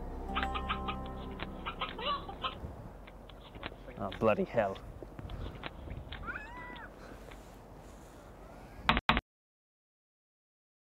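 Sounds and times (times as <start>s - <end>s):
animal call gliding in pitch: 0.2s - 2.7s, 6.2s - 6.9s.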